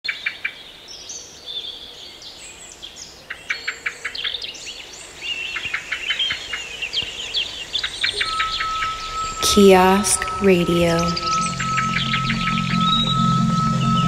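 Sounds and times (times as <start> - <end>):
birds chirping: 6.7 - 14.0.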